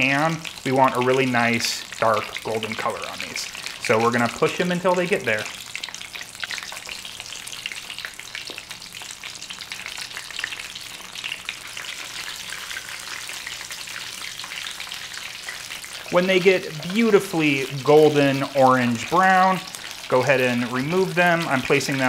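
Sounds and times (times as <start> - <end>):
deep-frying in hot oil: 0.0 - 22.0.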